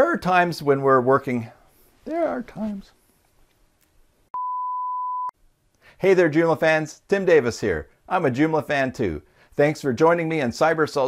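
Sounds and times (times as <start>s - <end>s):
steady test-tone beep: 4.4s - 5.4s.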